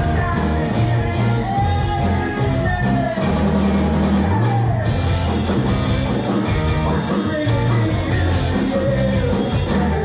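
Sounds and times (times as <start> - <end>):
held bass notes: 0.0 - 10.0
rock band playing live: 0.0 - 10.0.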